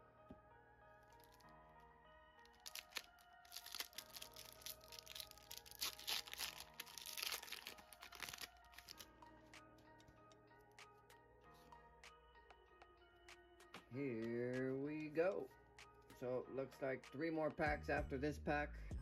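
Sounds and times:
quiet background music: 0.0s - 19.0s
foil wrapper tearing and crinkling: 2.5s - 9.0s.

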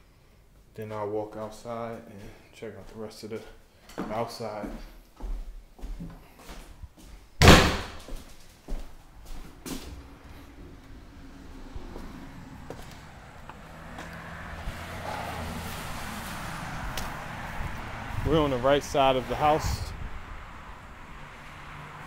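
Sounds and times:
outdoor background hum: 5.1s - 21.6s
door banging shut: 7.4s - 8.2s.

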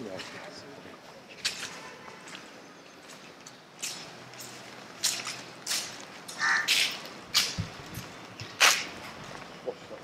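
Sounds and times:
crows cawing: 6.3s - 7.0s.

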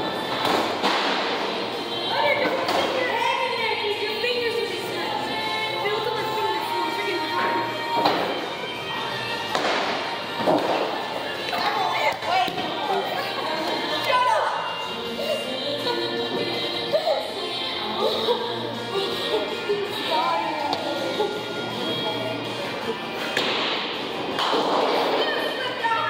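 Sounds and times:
voices in bowling alley: 0.0s - 26.0s
boys laughing: 12.8s - 14.0s.

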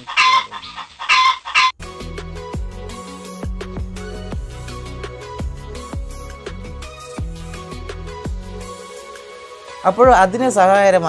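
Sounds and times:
loud animal calls: 0.0s - 1.8s
music: 1.8s - 11.0s.

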